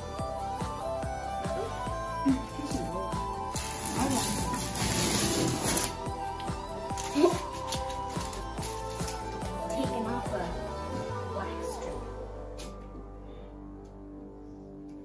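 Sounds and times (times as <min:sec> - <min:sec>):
music with held notes: 0:00.0 - 0:15.0
tape peeling off wall: 0:03.6 - 0:06.0.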